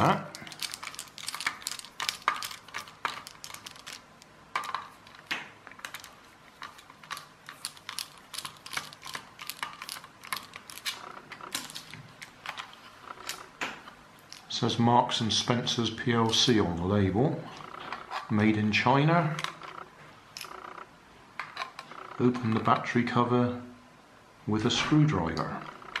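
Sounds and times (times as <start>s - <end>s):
screwdriver turning screws: 0.0s - 12.0s.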